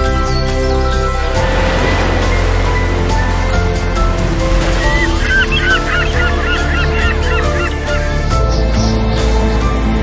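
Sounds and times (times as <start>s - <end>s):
piano and orchestra music: 0.0s - 9.8s
flock of birds honking: 4.2s - 8.9s.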